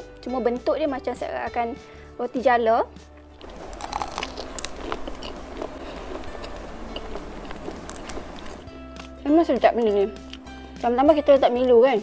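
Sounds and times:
crisp crackling chewing: 3.3s - 9.2s
crispy crepe cracking: 3.4s - 8.6s.

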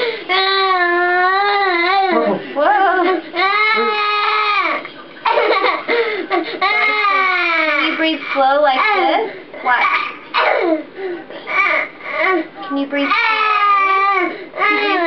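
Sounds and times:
young boy crying: 0.3s - 4.9s, 5.6s - 8.1s, 13.1s - 15.0s.

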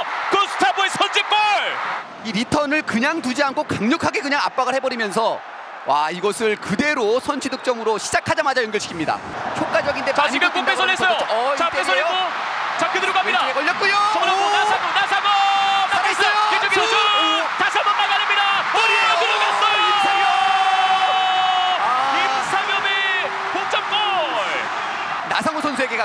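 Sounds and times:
commentator shouting excitedly: 9.8s - 24.6s.

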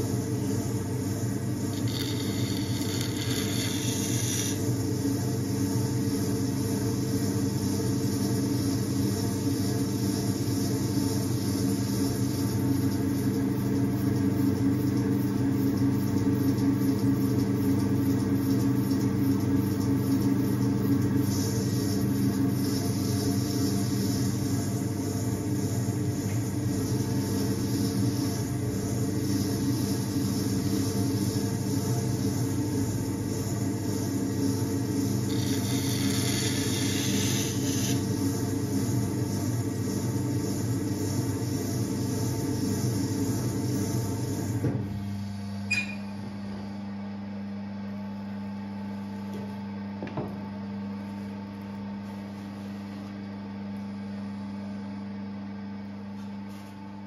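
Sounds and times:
potter's wheel motor humming: 0.0s - 47.0s.

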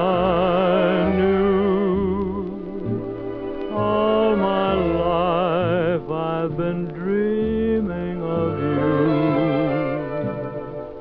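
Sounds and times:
vintage swing music recording: 0.0s - 11.0s.

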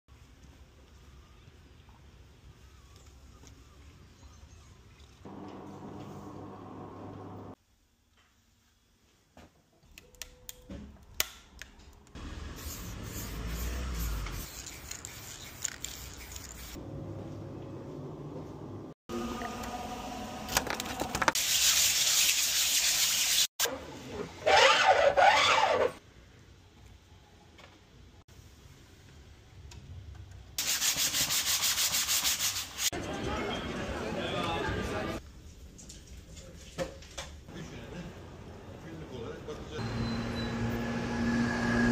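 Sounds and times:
aerosol spray can hissing: 12.6s - 16.8s
quick rubbing strokes: 12.6s - 16.8s
crowd hubbub of voices: 33.0s - 35.2s.

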